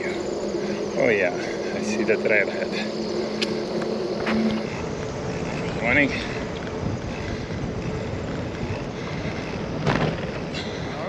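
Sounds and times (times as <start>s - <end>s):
bicycle tyres rolling: 0.0s - 11.0s
wind buffeting microphone: 0.0s - 11.0s.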